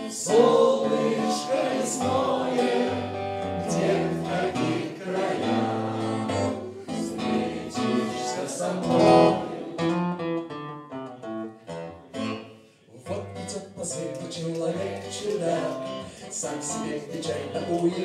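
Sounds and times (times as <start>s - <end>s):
group singing: 0.0s - 10.2s, 14.6s - 18.0s
acoustic guitar strumming: 0.0s - 18.0s.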